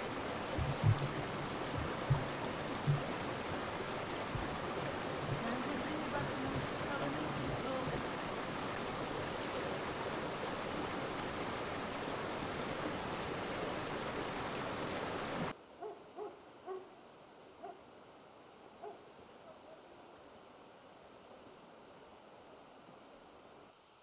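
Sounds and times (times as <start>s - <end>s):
stream water rushing: 0.0s - 23.7s.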